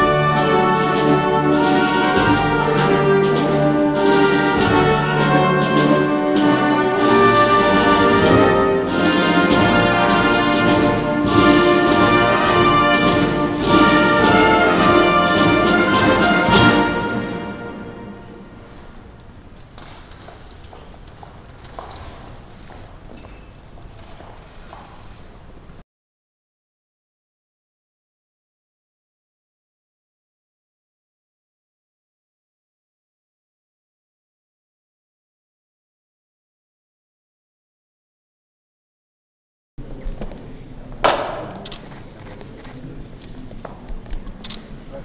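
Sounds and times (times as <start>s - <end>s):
footsteps on marble floor: 18.3s - 25.8s, 39.9s - 44.8s
footsteps on stone steps: 19.2s - 25.0s.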